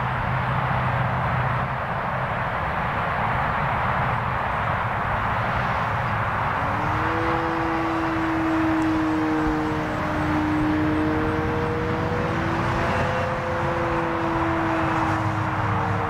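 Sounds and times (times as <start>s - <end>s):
model airplane motor drone: 6.4s - 16.0s.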